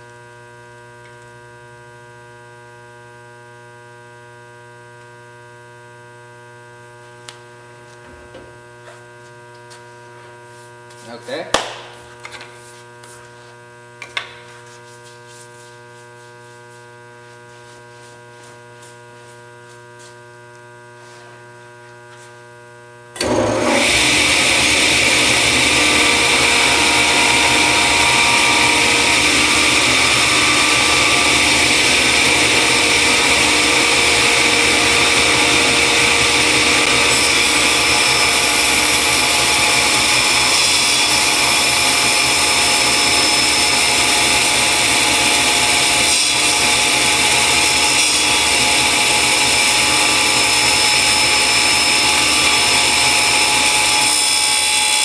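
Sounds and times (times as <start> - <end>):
table saw cutting wood: 23.2 - 55.0.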